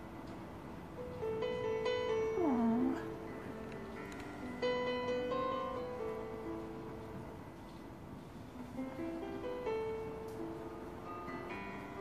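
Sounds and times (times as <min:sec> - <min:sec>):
soft piano music: 0:00.0 - 0:12.0.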